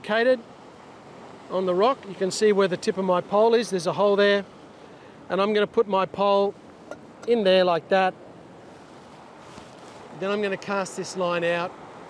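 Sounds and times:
ocean surf: 0.0 - 12.0
wind: 0.0 - 12.0
man speaking: 1.5 - 4.4, 7.2 - 8.1, 10.2 - 11.7.

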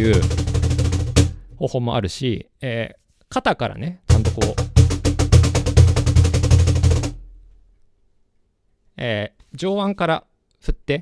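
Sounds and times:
cajon roll: 0.0 - 1.4, 4.1 - 7.5.

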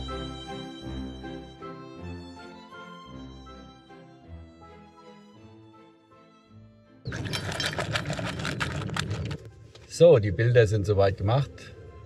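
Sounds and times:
soft background music: 0.0 - 8.1, 9.4 - 12.0
dog lapping water from metal bowl: 7.1 - 9.5.

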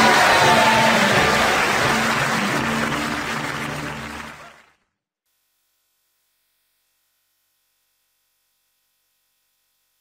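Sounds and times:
closing theme music: 0.0 - 4.6
studio audience applause: 0.0 - 4.8.

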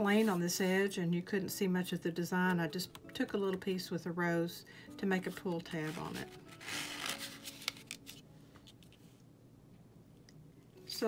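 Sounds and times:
paper rustling: 5.6 - 9.0.

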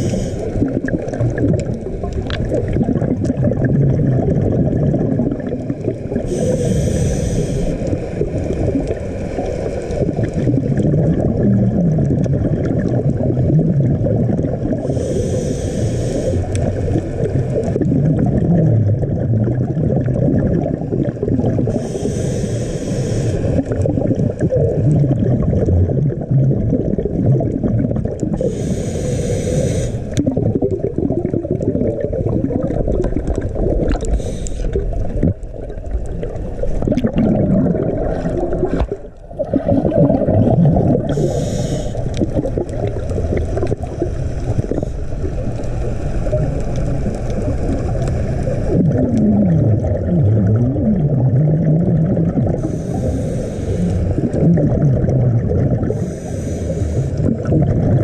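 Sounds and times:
regulator breathing hiss: 0.0 - 0.6, 6.2 - 8.2, 14.8 - 16.6, 21.7 - 23.6, 28.4 - 30.2, 34.0 - 35.0, 41.1 - 42.2, 52.6 - 54.3, 55.8 - 57.2
underwater rumble and exhaust bubbles: 0.0 - 58.0.

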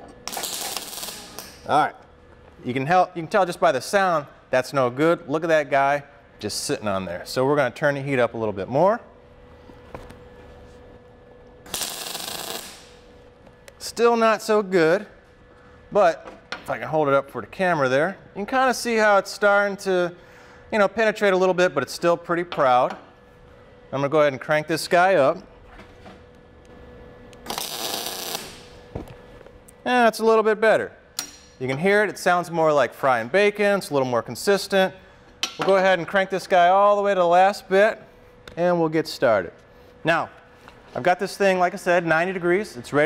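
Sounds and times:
welder arc crackling: 0.0 - 1.8, 11.6 - 14.0, 26.6 - 28.9.

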